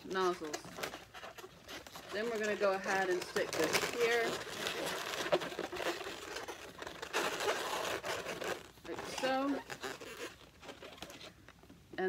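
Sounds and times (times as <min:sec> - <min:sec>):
latex balloons rubbing: 0:00.0 - 0:11.5.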